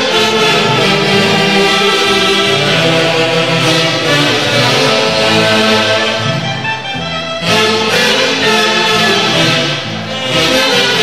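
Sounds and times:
saxophones playing held notes: 0.0s - 11.0s.

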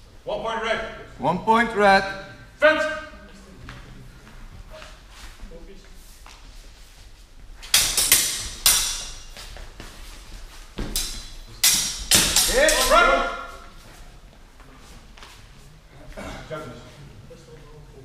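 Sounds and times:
swords clashing blade on blade: 7.7s - 9.4s, 10.8s - 13.6s
person shouting: 12.5s - 13.6s.

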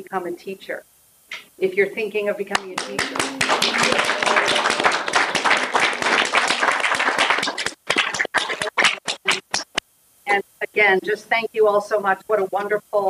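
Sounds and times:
audience applauding: 2.6s - 9.8s.

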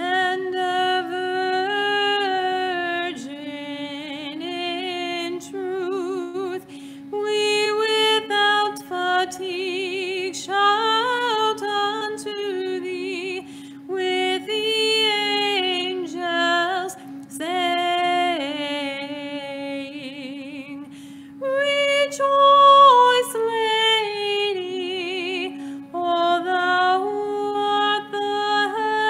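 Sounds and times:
held drone note: 0.0s - 29.0s.

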